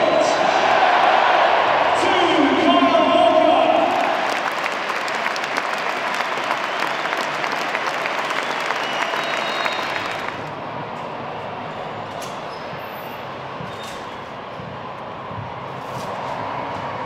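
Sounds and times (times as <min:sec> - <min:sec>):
stadium crowd applauding: 0:02.0 - 0:10.6.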